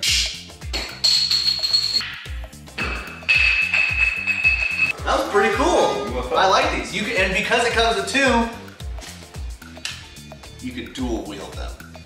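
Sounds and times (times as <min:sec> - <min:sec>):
background music with steady beat: 0:00.0 - 0:12.0
high held tone: 0:03.2 - 0:06.3.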